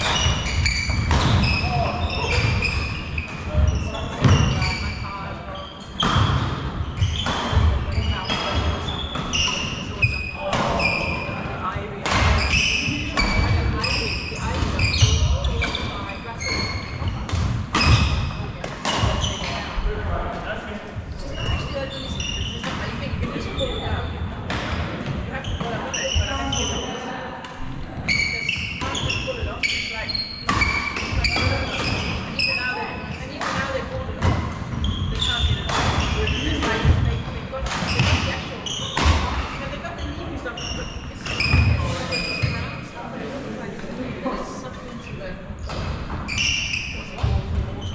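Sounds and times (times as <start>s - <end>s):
shoes squeaking: 0.0s - 11.5s, 12.4s - 19.8s, 21.1s - 27.2s, 27.8s - 43.3s, 45.6s - 47.9s.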